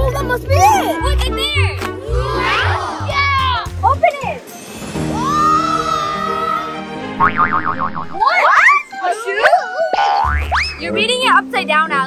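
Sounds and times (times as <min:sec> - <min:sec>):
cartoon wobbling boing: 0:07.2 - 0:08.2, 0:10.0 - 0:10.8.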